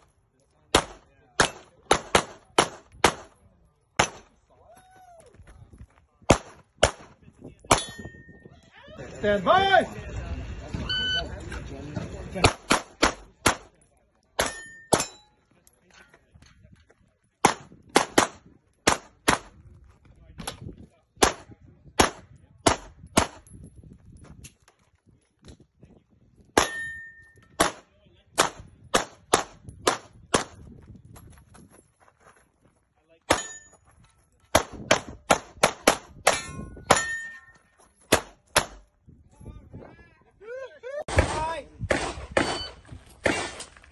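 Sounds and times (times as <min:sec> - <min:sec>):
pistol shots: 0:00.7 - 0:03.4, 0:04.0 - 0:04.4, 0:06.3 - 0:08.0, 0:12.4 - 0:13.7, 0:17.4 - 0:19.6, 0:21.2 - 0:23.4, 0:26.6 - 0:27.0, 0:27.6 - 0:30.6, 0:34.5 - 0:37.3, 0:38.1 - 0:38.9, 0:41.1 - 0:43.7
steel targets ringing: 0:07.7 - 0:08.4, 0:14.4 - 0:15.4, 0:26.6 - 0:27.5, 0:33.3 - 0:33.8, 0:36.3 - 0:37.7, 0:42.4 - 0:42.8.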